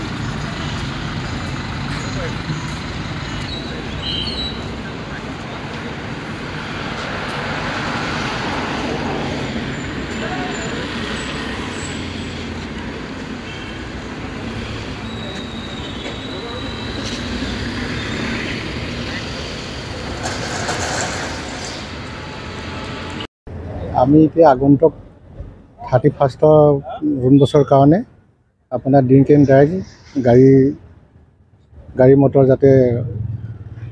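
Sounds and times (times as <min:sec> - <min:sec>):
car engines running: 0:00.0 - 0:24.0
traffic hum: 0:00.0 - 0:33.9.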